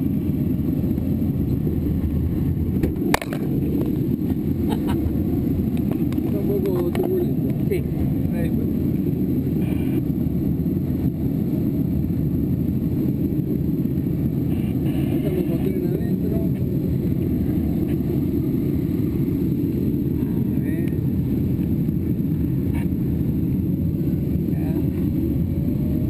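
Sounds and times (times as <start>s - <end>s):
air rushing over canopy: 0.0s - 26.0s.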